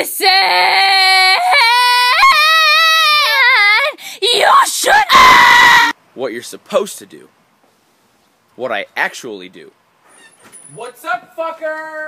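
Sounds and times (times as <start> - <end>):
person yelling and screaming: 0.2 - 5.9.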